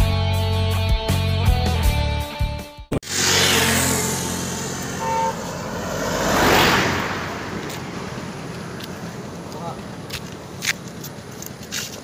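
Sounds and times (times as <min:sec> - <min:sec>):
vehicle passing by: 0:03.0 - 0:10.4
short horn beep: 0:05.0 - 0:05.6.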